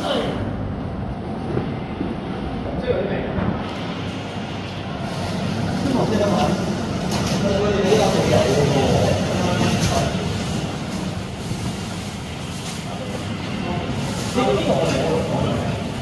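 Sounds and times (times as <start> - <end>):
indistinct chatter of people: 0.0 - 16.0
steady rumbling: 0.0 - 16.0.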